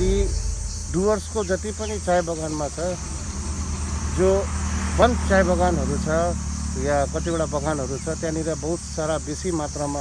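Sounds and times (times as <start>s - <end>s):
steady low rumble: 0.0s - 7.1s
high insect-like chirring: 0.0s - 10.0s.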